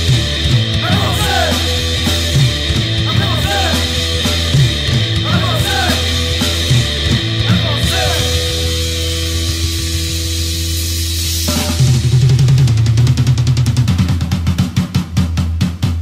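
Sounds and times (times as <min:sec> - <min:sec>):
hardcore punk band playing: 0:00.0 - 0:16.0
fast drum roll: 0:11.4 - 0:16.0.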